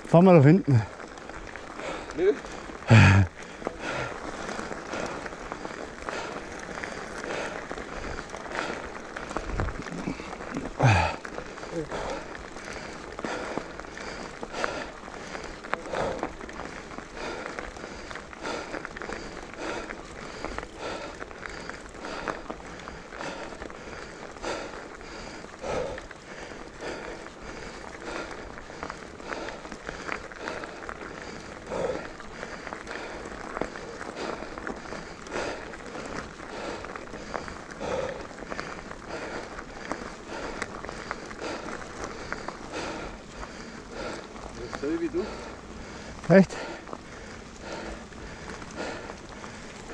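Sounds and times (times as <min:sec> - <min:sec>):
bike tyres rolling on dirt trail: 0:00.0 - 0:49.9
crackling and rattling over bumps: 0:00.0 - 0:49.9.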